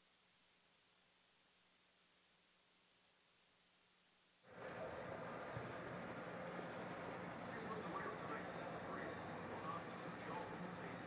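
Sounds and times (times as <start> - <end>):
outdoor background noise: 0.0 - 11.0
faint indistinct voices: 4.5 - 11.0.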